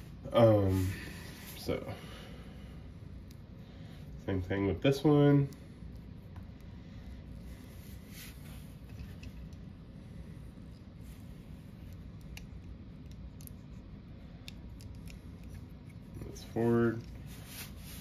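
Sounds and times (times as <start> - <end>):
low background noise: 0.0 - 18.0.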